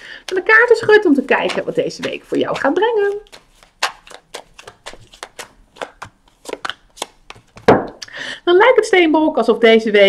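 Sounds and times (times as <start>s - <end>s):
cards being shuffled: 0.7s - 7.9s.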